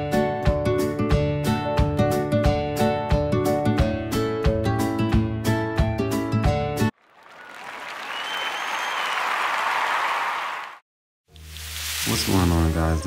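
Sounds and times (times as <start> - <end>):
music: 0.0 - 6.9, 12.1 - 13.0
applause: 6.9 - 10.8
faint whistle: 8.0 - 9.3.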